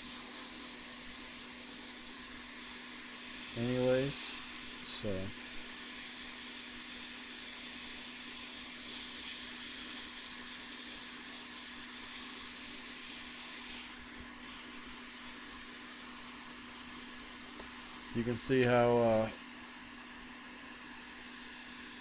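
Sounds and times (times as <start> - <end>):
hot air nozzle hissing: 0.0 - 22.0.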